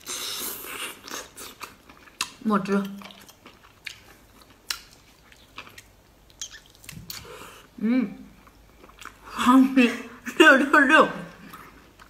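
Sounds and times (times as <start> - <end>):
person chewing: 0.0 - 7.8, 8.4 - 9.3.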